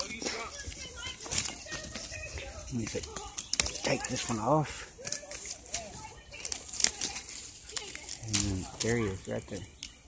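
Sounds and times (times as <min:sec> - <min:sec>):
leaves and twigs rustling: 0:00.0 - 0:10.0.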